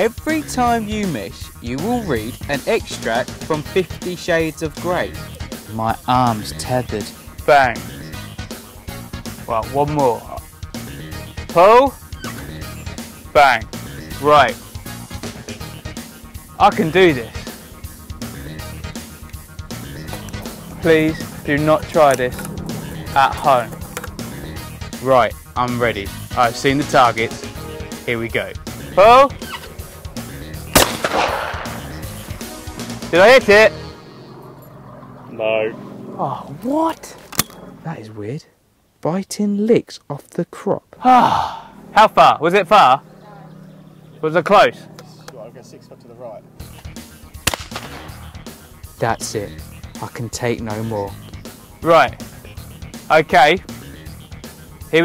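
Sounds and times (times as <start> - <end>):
man's voice: 0.0 - 8.1, 9.4 - 10.5, 16.5 - 17.6, 19.8 - 29.4, 49.0 - 51.2, 53.1 - 54.0
background music with guitar: 0.0 - 34.6
shotgun shot: 30.7 - 32.1, 47.4 - 48.2.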